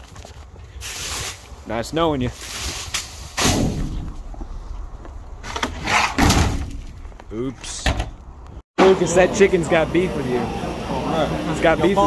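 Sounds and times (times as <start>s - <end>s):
trash bag thud in metal dumpster: 5.4s - 7.0s.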